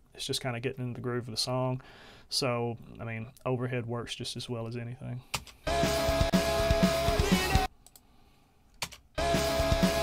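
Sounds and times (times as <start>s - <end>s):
rock song with drum kit: 5.7s - 7.7s, 9.2s - 10.0s.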